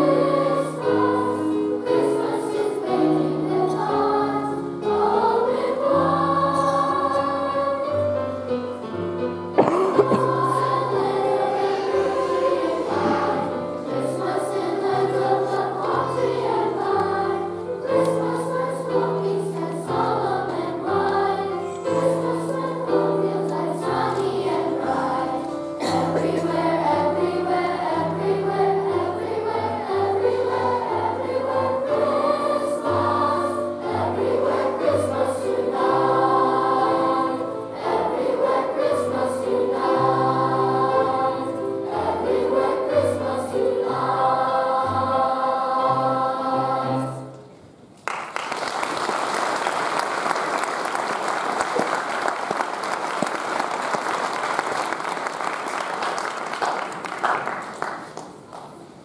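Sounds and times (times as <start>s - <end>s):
children's choir singing: 0.0s - 47.6s
piano accompaniment: 0.0s - 47.7s
audience applauding: 48.0s - 58.8s.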